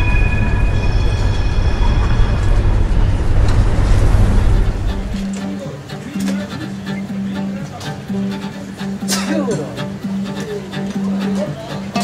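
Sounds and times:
high whistle-like tone: 0:00.0 - 0:05.2
loud low rumble: 0:00.0 - 0:05.4.

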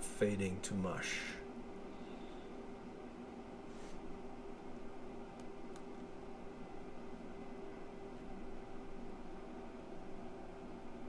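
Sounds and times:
computer humming: 0:00.0 - 0:11.0.

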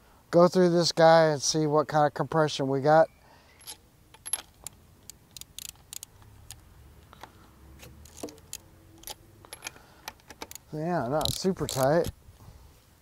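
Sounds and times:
wrench clicking on metal: 0:03.6 - 0:12.1.

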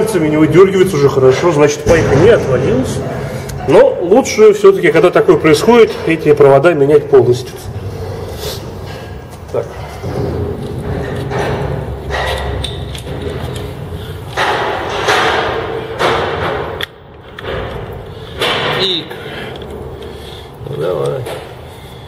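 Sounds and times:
wrench scraping and knocking on engine: 0:08.0 - 0:20.2
thuds: 0:10.0 - 0:16.8.

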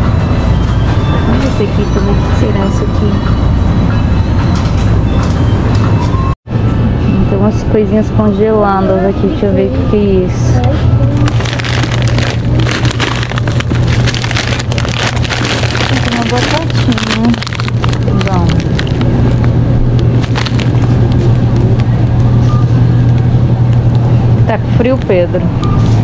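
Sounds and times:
steady low hum: 0:00.0 - 0:26.0
plastic packaging crinkling: 0:11.2 - 0:21.9.

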